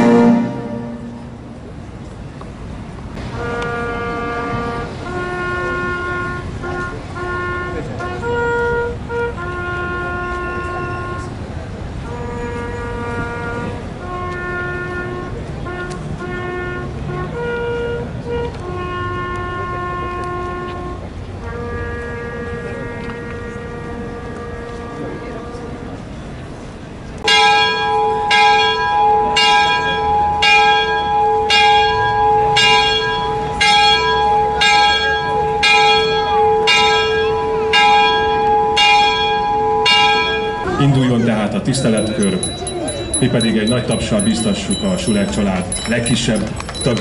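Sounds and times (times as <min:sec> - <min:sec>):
wind instrument slow melody: 0:00.0 - 0:01.9, 0:03.4 - 0:11.4, 0:12.0 - 0:26.0, 0:27.2 - 0:47.0
low outdoor background noise: 0:00.0 - 0:47.0.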